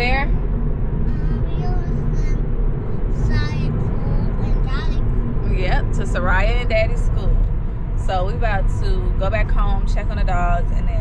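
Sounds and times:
voices talking: 0.0s - 0.3s, 1.1s - 2.4s, 3.1s - 7.4s, 8.0s - 11.0s
road rumble inside car: 0.0s - 11.0s.

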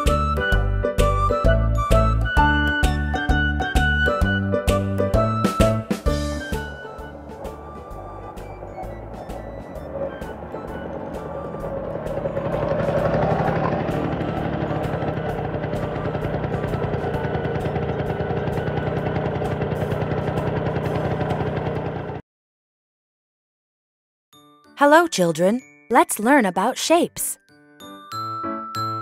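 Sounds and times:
children's background music: 0.0s - 19.0s, 24.4s - 29.0s
motor scooter engine buzzing: 6.1s - 22.2s.

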